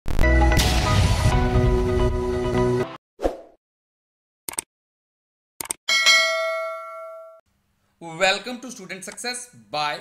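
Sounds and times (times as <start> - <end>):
bell ding: 5.9 - 7.4.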